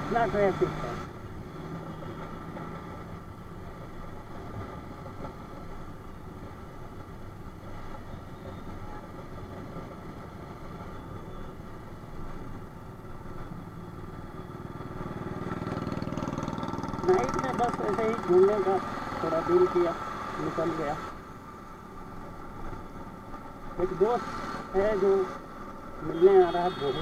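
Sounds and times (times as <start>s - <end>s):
wind and road noise: 0.0s - 27.0s
motorcycle engine cruising: 13.8s - 20.4s.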